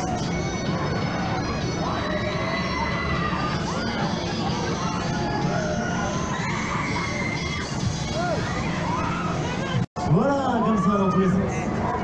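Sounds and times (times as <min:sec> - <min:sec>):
low fairground din: 0:00.0 - 0:12.0
riders screaming: 0:04.8 - 0:09.5.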